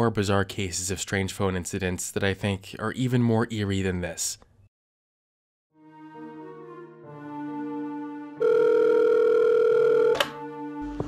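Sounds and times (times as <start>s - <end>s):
sustained music chord: 5.8s - 8.4s, 10.3s - 11.0s
telephone tone: 8.4s - 10.4s.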